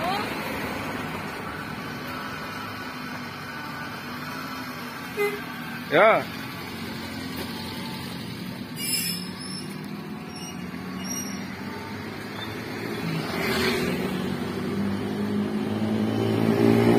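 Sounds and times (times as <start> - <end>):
passing traffic: 0.0 - 16.9
vehicle engine running: 0.0 - 16.9.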